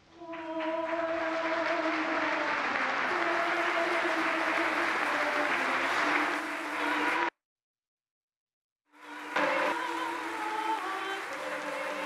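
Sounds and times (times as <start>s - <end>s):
congregation applauding: 0.0s - 7.3s, 9.0s - 12.0s.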